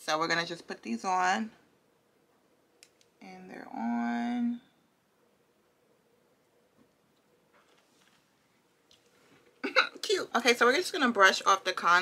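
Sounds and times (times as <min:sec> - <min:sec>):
woman's voice: 0:03.2 - 0:04.7, 0:09.6 - 0:12.0.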